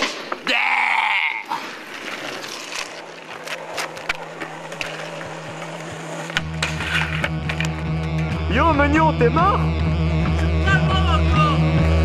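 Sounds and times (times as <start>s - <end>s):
skateboard rolling on asphalt: 1.6s - 8.3s
skateboard clacks and knocks: 3.3s - 8.2s
music with heavy bass: 6.4s - 12.0s.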